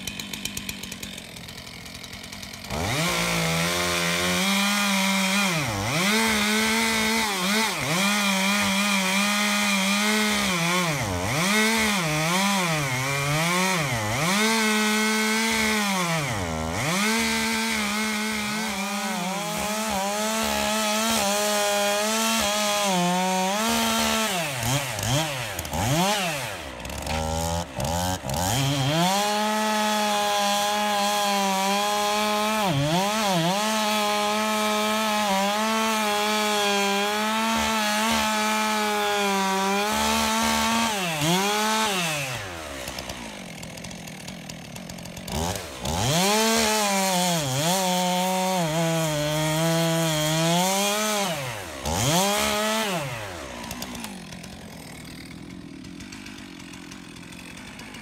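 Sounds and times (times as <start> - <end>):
chainsaw cutting log: 0.0 - 58.0.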